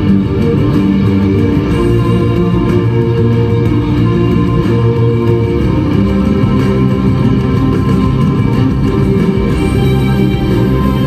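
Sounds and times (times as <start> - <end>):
instrumental music with held chords: 0.0 - 11.0
strong low bass: 0.0 - 11.0.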